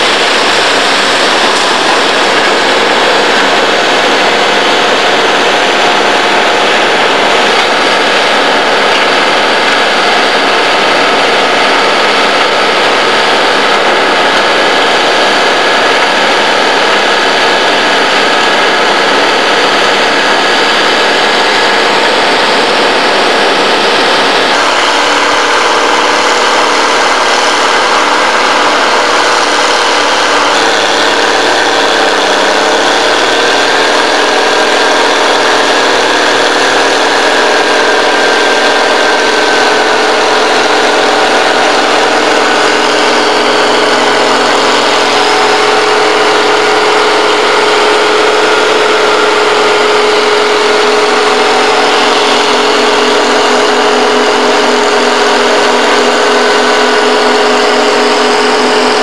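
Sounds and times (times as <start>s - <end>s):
diesel engine running: 0.0s - 59.0s.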